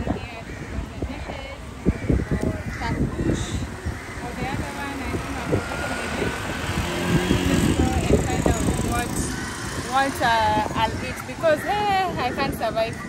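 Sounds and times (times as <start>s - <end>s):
vehicles passing: 0.0s - 13.0s.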